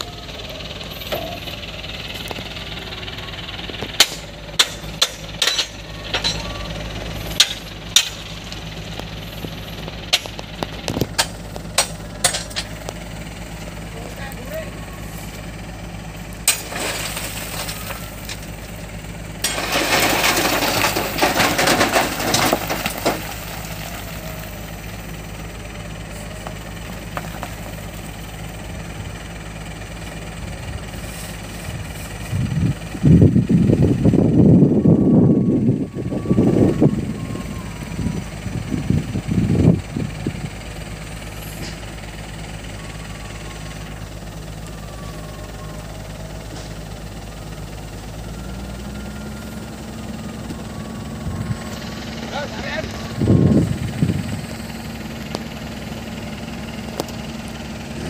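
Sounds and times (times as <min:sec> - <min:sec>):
diesel truck engine idling: 0:00.0 - 0:58.0.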